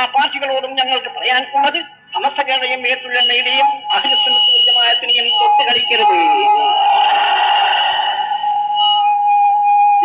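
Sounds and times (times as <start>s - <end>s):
high-pitched feedback whistle: 5.5s - 10.0s
rush of noise: 6.6s - 9.0s.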